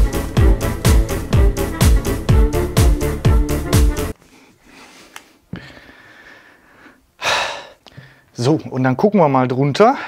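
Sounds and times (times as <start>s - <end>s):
man breathing out hard: 4.5s - 8.3s.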